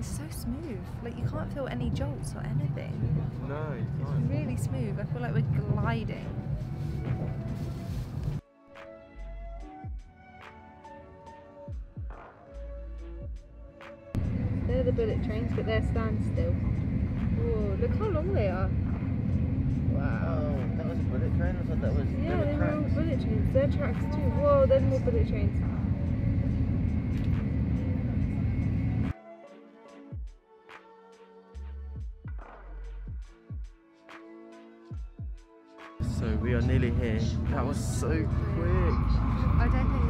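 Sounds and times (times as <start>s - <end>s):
train cabin rumble: 0.0s - 8.4s
train rumble from inside cabin: 0.0s - 8.4s, 14.2s - 29.1s, 36.0s - 40.0s
background music: 0.0s - 40.0s
faint high whine: 36.0s - 40.0s.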